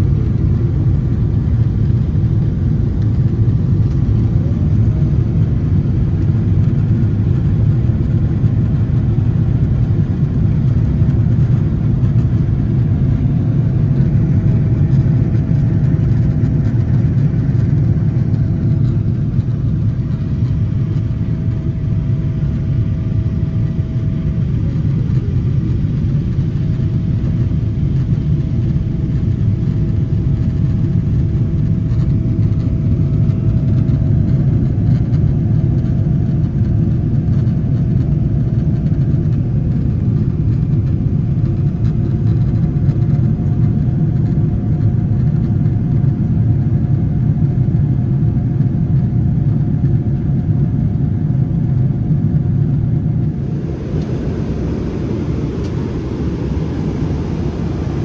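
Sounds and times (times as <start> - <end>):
faint steady whine: 0.0 - 58.0
jet cabin deep rumble: 0.0 - 58.0.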